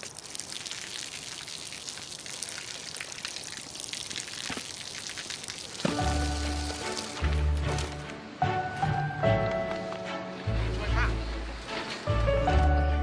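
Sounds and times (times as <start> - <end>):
water pattering and splashing: 0.0 - 8.2.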